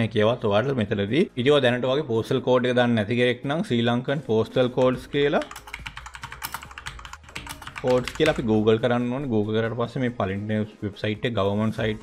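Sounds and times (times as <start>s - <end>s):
typing on computer keyboard: 4.8s - 8.5s.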